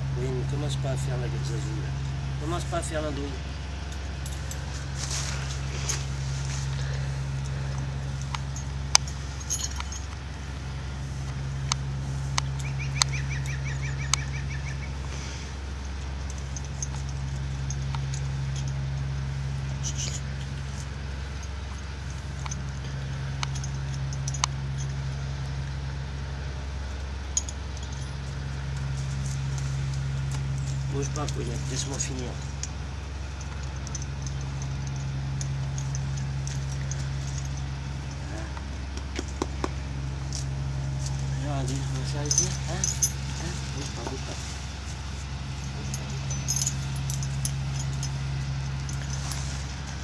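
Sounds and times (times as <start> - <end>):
low hum: 0.0 - 50.0
metallic clicks of halter fittings: 45.8 - 49.4.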